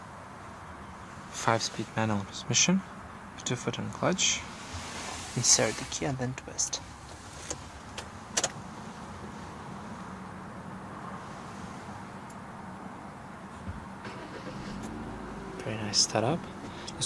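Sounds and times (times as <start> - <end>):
car engine idling: 13.5 - 17.0
ignition clicks: 14.0 - 17.0.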